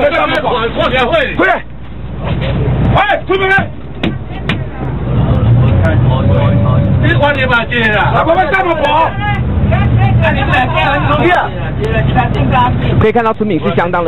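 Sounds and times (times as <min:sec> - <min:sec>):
bus engine rumble: 0:00.0 - 0:14.0
people talking and calling out: 0:00.0 - 0:14.0.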